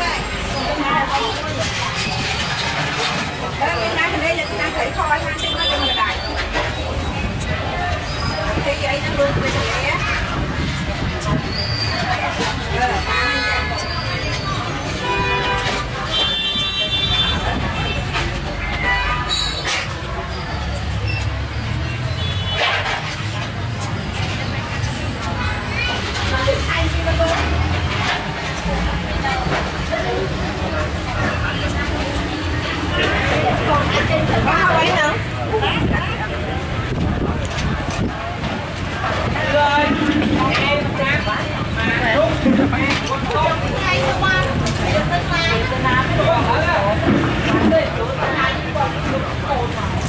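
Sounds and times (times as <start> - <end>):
motorbikes: 0.0 - 50.0
people talking: 0.0 - 50.0
street traffic rumble: 0.0 - 50.0.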